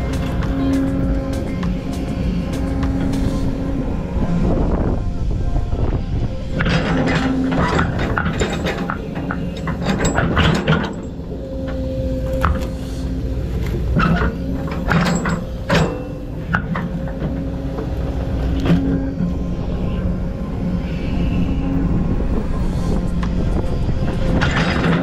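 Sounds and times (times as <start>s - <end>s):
excavator engine running: 0.0s - 25.0s
hydraulic whine: 0.0s - 25.0s.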